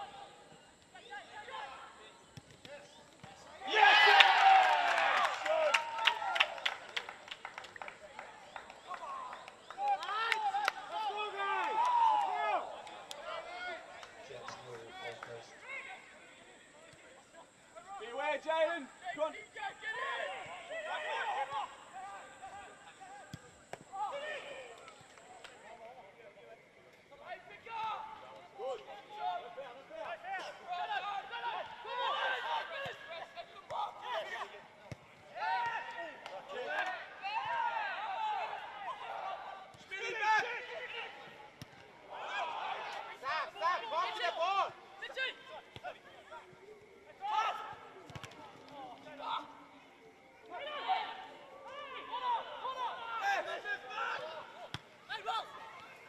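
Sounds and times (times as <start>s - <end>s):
footballers shouting: 0.0s - 25.7s, 27.2s - 56.0s.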